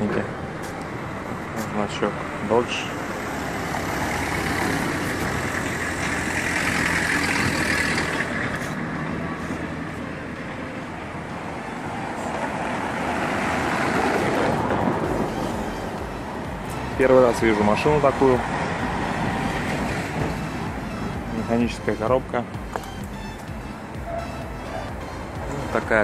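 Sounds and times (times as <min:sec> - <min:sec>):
street traffic passing: 0:00.0 - 0:26.0.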